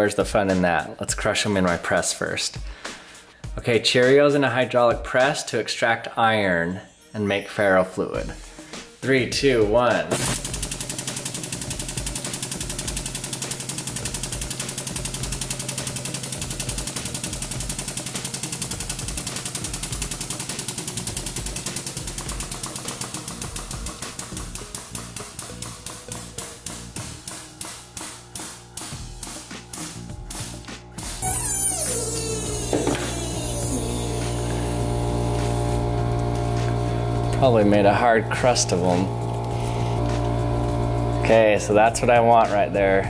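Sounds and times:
hydraulic press clicking: 10.1s - 29.9s, 31.2s - 37.5s
electric motor hum: 10.2s - 42.3s.

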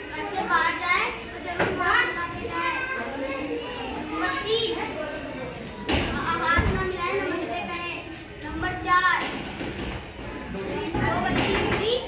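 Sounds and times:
children calling out: 0.0s - 9.3s.

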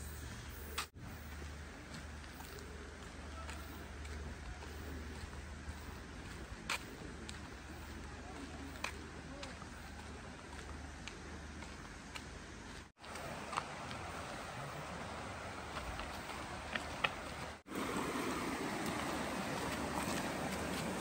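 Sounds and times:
footstep clicks on path: 0.2s - 14.5s, 15.6s - 17.7s, 18.7s - 21.0s
faint distant voices: 2.4s - 11.7s.

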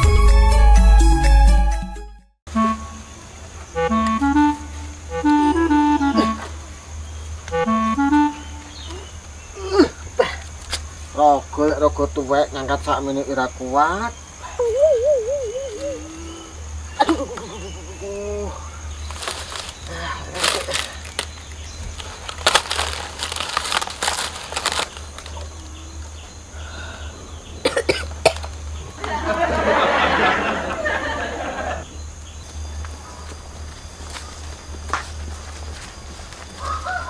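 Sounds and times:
man coughing: 6.1s - 6.5s, 17.0s - 17.4s, 27.6s - 28.4s.

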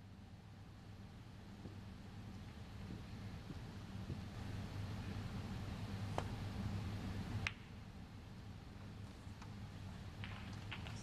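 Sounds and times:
snooker balls colliding click: 7.4s - 7.7s, 10.2s - 11.0s.

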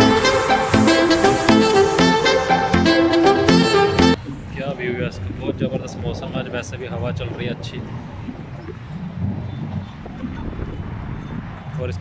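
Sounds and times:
wind buffeting microphone: 4.2s - 12.0s.

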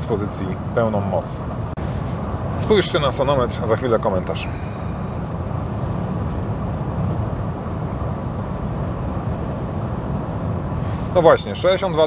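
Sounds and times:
air rushing around car: 0.0s - 12.0s
tyres on wet road: 0.0s - 12.0s
rain drops on windscreen: 1.6s - 12.0s.

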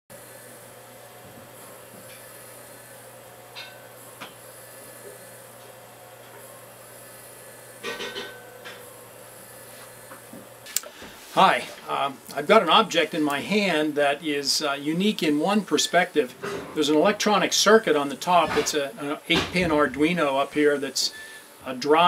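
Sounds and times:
electric motors humming: 0.1s - 22.0s.

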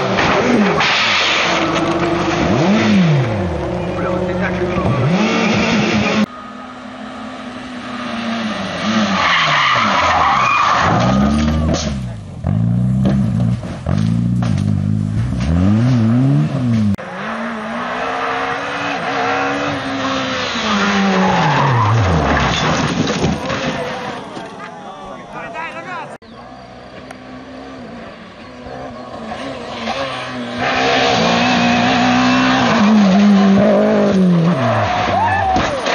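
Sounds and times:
racing car engines revving: 0.0s - 35.9s
tyres skidding: 0.0s - 35.9s
people's voices: 3.6s - 6.8s, 23.2s - 27.1s.

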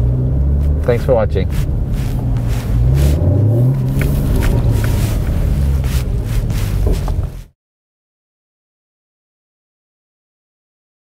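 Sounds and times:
car engine drone from cabin: 0.0s - 7.5s.

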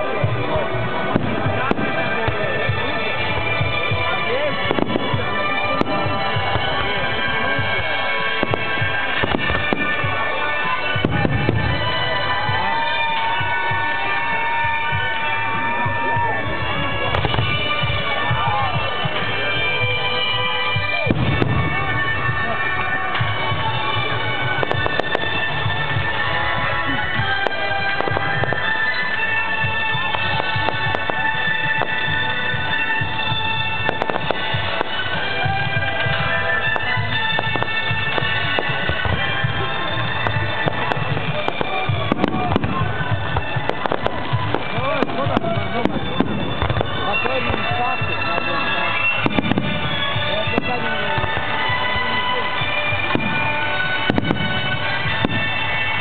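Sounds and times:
fireworks bangs and crackles: 0.0s - 56.0s
music with long held notes: 0.0s - 56.0s.

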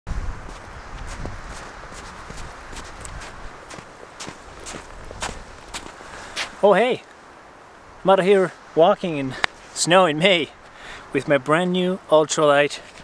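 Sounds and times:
footsteps crunching in snow: 0.1s - 6.6s.

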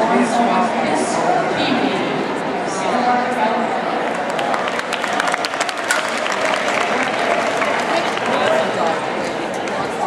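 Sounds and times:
crowd applauding: 4.1s - 9.8s.

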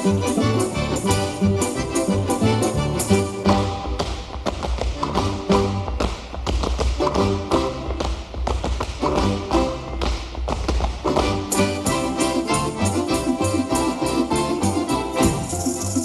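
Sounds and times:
accordions playing folk dance tune: 0.0s - 16.0s
boots stamping on stage floor: 3.1s - 16.0s.

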